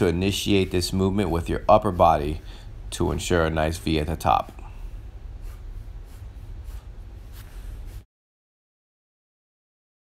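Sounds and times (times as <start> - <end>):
low hum: 0.0 - 8.0
faint soft rustles: 0.0 - 8.1.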